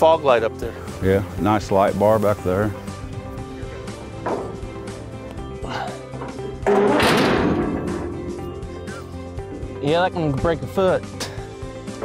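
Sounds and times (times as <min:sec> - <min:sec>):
background music: 0:00.0 - 0:12.0
metal ramp crashing down: 0:06.2 - 0:08.5.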